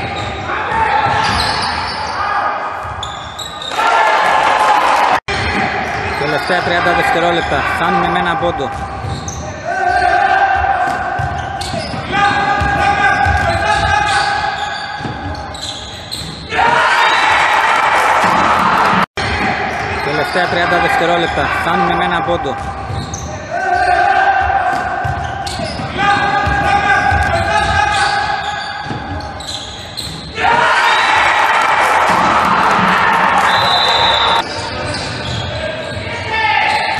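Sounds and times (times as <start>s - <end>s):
man speaking in echoing hall: 5.3s - 15.6s, 19.2s - 29.5s, 34.4s - 36.9s
basketball bouncing on gym floor: 8.5s - 14.2s, 22.5s - 28.0s.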